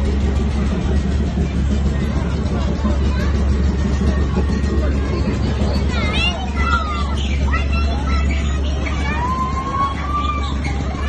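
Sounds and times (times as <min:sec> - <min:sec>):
machinery humming: 0:00.0 - 0:11.0
people's voices: 0:00.0 - 0:11.0.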